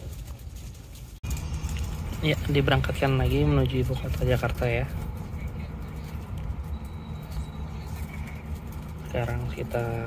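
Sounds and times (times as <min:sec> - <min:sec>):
engine and road rumble: 0:00.0 - 0:10.0.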